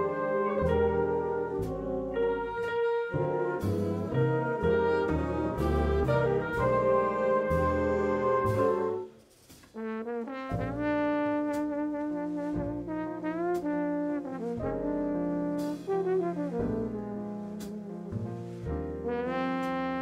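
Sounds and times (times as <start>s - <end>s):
jazz big band playing: 0.0s - 20.0s.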